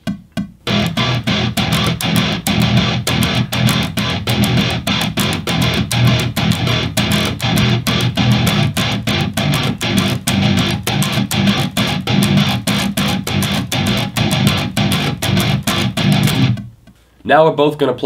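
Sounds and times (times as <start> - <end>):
distorted electric guitar chugging: 0.6 - 16.7
metronome click: 0.7 - 16.7.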